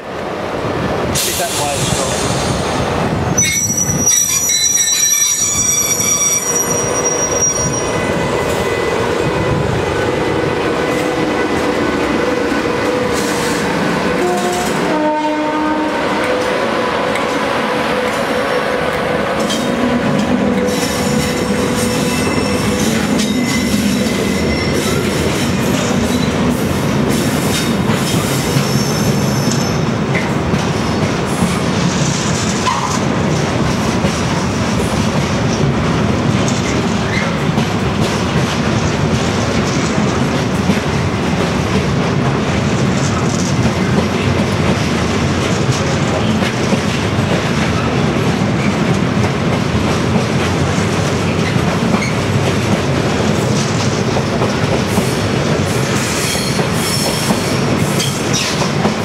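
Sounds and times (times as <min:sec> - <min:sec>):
high-pitched wheel squeal: 0:03.4 - 0:08.0, 0:21.9 - 0:25.0.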